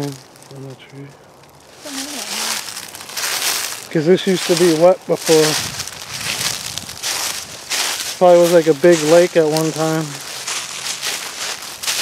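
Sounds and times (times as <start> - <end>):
footsteps crunching dry leaves: 0.0 - 12.0.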